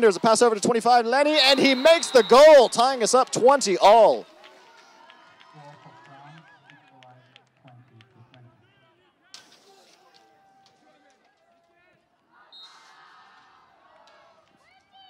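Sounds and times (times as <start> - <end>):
distant voices calling: 1.2 - 4.2.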